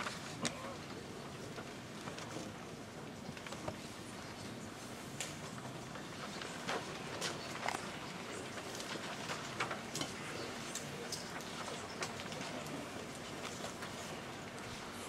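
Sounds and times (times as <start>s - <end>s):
paper rustling: 0.0s - 15.0s.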